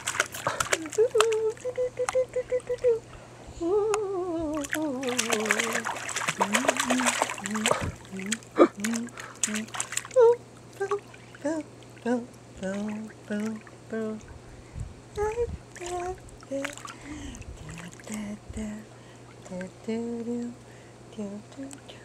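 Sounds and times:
baby splashing water: 0.0 - 2.8, 4.5 - 11.3, 15.8 - 18.1.

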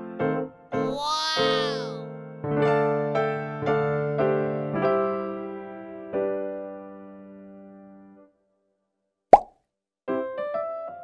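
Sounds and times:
children's keyboard music: 0.8 - 2.0.

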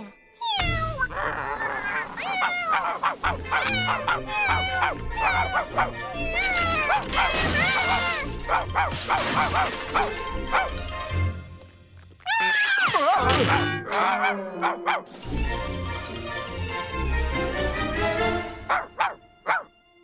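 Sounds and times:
cartoon dog barking: 2.0 - 10.8, 12.9 - 15.1, 18.7 - 19.7
lively background music: 2.1 - 12.0, 12.9 - 20.0.

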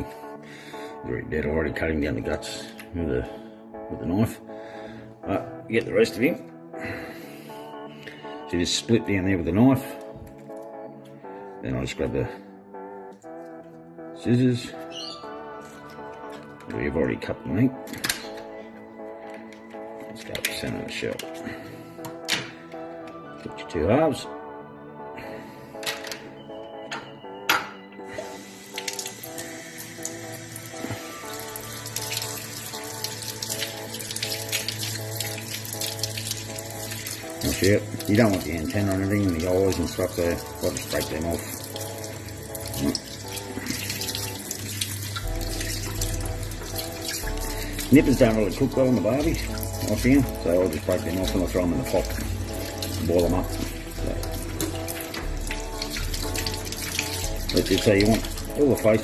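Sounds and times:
background music: 0.0 - 59.0
tap water running into sink: 28.2 - 59.0.

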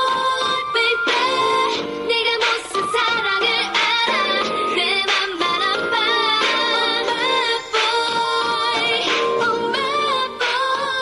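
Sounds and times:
pop dance track: 0.0 - 11.0
processed female vocals singing: 0.0 - 11.0.

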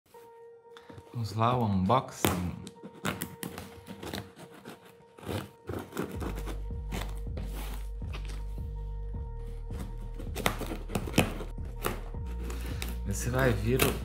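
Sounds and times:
background music with low bass: 0.1 - 14.0.

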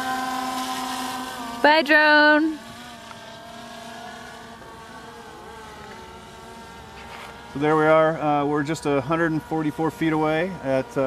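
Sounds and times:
faint drone propellers humming: 0.0 - 11.0.

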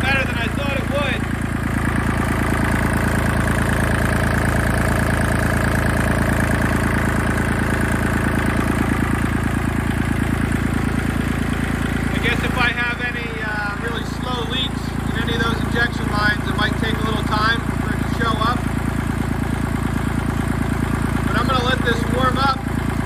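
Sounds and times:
tractor diesel engine clattering: 0.0 - 23.0.

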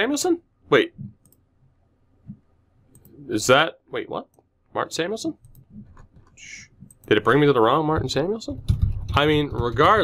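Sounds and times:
computer mouse clicks: 1.0 - 1.4, 2.3 - 3.2, 5.4 - 7.2.

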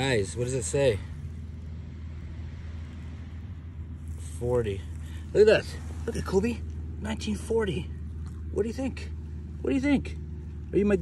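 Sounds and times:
low ambient rumble: 0.0 - 11.0.

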